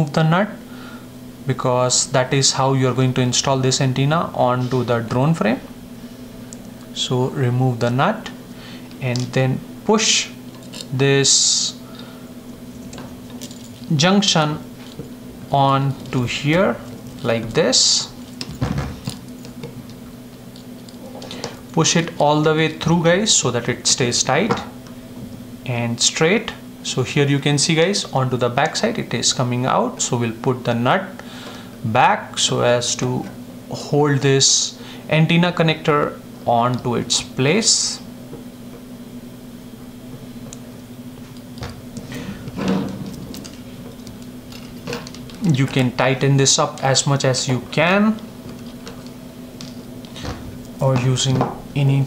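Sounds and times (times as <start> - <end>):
steady low hum: 0.0 - 52.0
small parts clicking and tapping: 12.8 - 13.9, 43.3 - 45.8.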